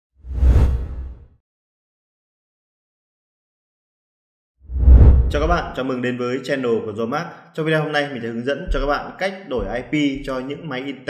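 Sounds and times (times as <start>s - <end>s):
whoosh sound effect: 4.7s - 5.6s.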